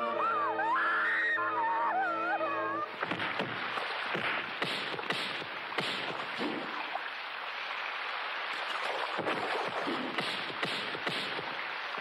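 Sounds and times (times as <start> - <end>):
high wavering cry: 0.0 - 2.9
splashes and thuds: 2.9 - 7.2, 8.1 - 12.0.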